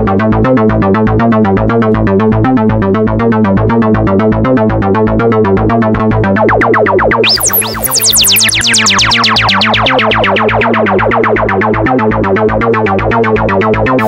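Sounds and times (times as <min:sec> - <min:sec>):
high swooping synth tone: 0:06.2 - 0:11.8
synthesizer sequenced pattern: 0:06.2 - 0:13.1
bright tones falling in pitch: 0:06.4 - 0:11.3.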